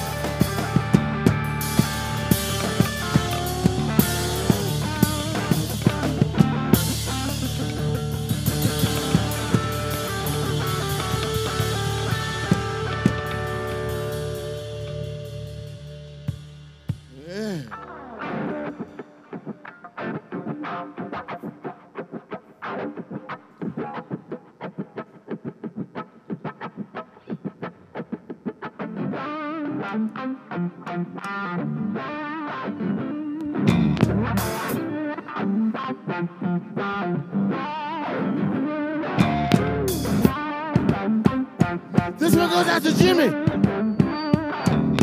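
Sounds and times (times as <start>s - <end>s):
drum kit: 0.0s - 17.8s, 33.7s - 34.9s, 39.2s - 45.0s
bass guitar: 0.0s - 19.0s, 28.2s - 45.0s
distorted electric guitar: 0.0s - 45.0s.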